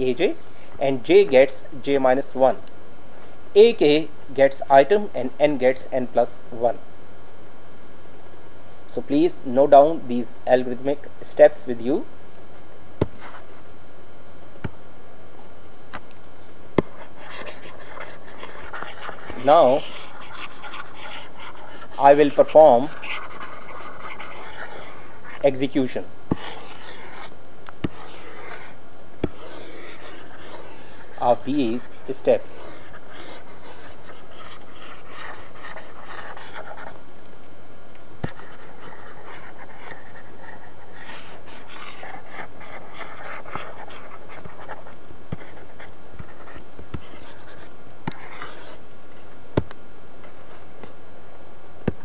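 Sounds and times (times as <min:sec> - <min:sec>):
microphone hiss: 0:00.0 - 0:52.0
breathy panting noise: 0:16.8 - 0:25.5, 0:26.3 - 0:37.0, 0:38.2 - 0:48.8
stylus scratching on tablet: 0:16.8 - 0:37.0, 0:38.2 - 0:48.8.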